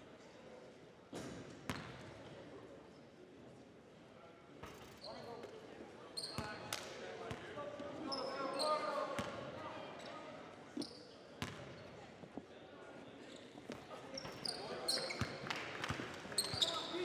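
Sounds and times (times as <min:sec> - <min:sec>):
sneakers squeaking: 0:01.2 - 0:02.0, 0:06.2 - 0:06.6, 0:13.2 - 0:17.0
murmur of voices: 0:02.0 - 0:17.0.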